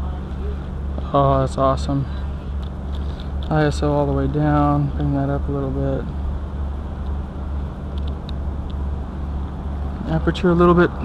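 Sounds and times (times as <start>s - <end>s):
low urban rumble: 0.0s - 11.0s.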